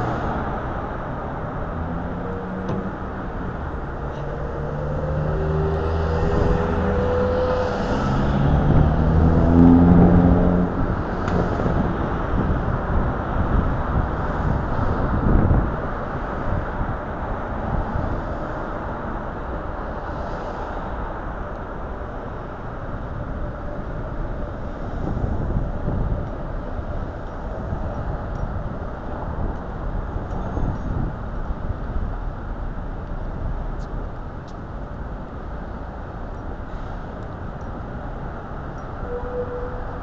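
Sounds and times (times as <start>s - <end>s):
cars driving past: 0.0s - 40.0s
road noise: 0.0s - 40.0s
traffic hum: 0.0s - 40.0s
vehicle engine humming: 0.0s - 40.0s.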